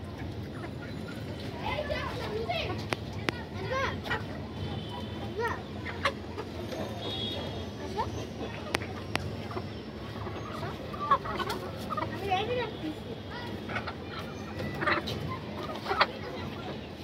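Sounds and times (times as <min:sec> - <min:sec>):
chickens clucking: 0:00.0 - 0:17.0.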